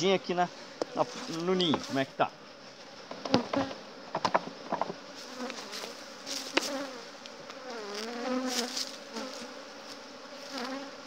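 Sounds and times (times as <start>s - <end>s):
honeybees buzzing: 0.0s - 11.0s
wooden hive parts knocking: 3.1s - 5.6s.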